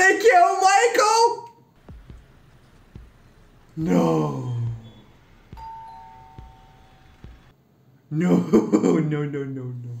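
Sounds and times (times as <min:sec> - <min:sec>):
two-tone doorbell chime: 0:04.9 - 0:07.5.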